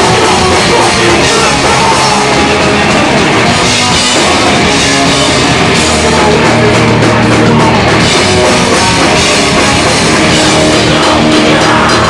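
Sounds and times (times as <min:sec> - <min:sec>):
distorted electric guitars: 0:00.0 - 0:12.0
pounding drums and cymbals: 0:00.0 - 0:12.0.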